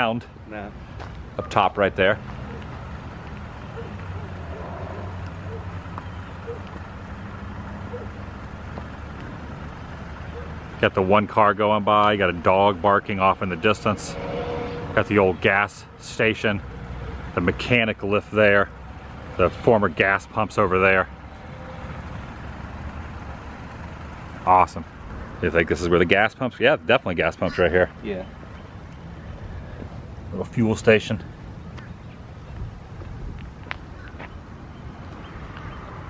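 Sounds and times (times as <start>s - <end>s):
outdoor street rumble: 0.0s - 36.0s
distant dog barking: 2.4s - 2.8s, 3.6s - 5.8s, 6.4s - 6.8s, 7.8s - 8.3s, 10.2s - 10.6s
car passing by: 2.4s - 8.1s, 13.8s - 15.2s.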